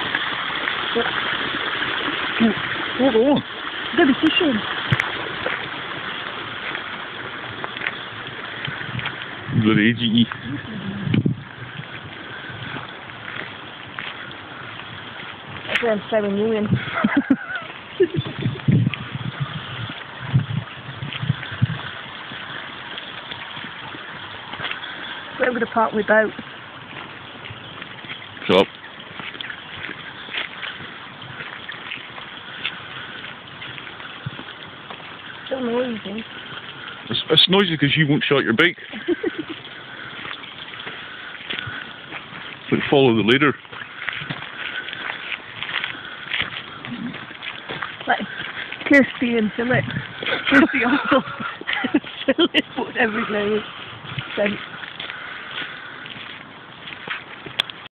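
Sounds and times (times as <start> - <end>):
water rushing: 0.0 - 57.9
person's voice: 2.4 - 3.4, 4.0 - 4.6, 52.2 - 53.6, 54.4 - 54.6
faint ticks: 54.2 - 57.8.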